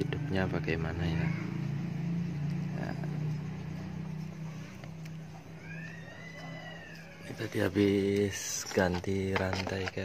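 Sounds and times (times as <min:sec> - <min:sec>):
animal call rising and falling: 0:05.5 - 0:07.4.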